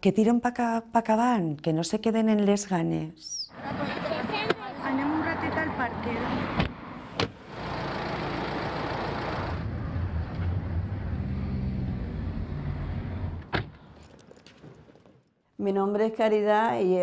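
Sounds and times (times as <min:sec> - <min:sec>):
car engine and road noise: 0:03.5 - 0:14.3
car door shutting: 0:06.6 - 0:07.4, 0:12.9 - 0:13.8.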